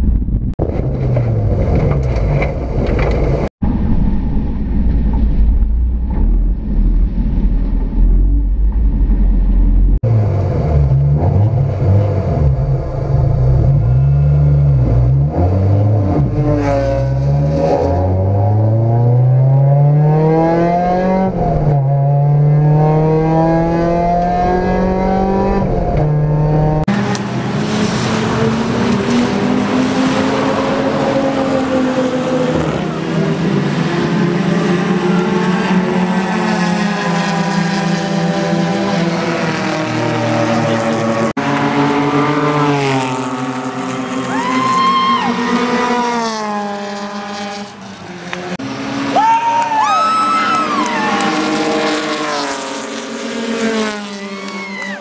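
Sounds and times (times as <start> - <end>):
race car engine revving in cockpit: 9.8 - 44.3, 45.3 - 49.1, 50.7 - 54.6
race cars passing by: 10.0 - 55.0.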